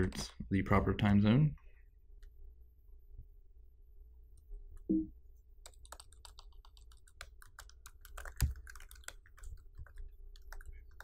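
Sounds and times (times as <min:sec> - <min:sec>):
computer keyboard typing: 0:05.6 - 0:11.0.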